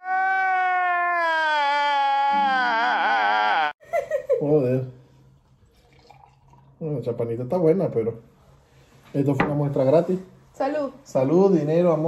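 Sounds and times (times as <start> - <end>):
man wailing: 0.0 - 3.8.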